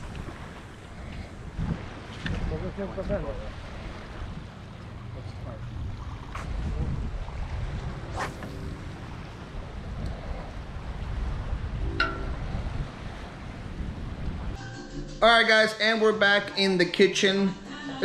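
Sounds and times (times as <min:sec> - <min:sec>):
sea washing: 0:00.0 - 0:14.6
wind buffeting microphone: 0:00.0 - 0:14.6.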